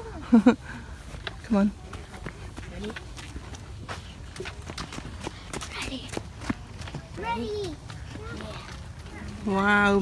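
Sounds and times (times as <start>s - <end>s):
footsteps on dirt path: 0.6s - 10.0s.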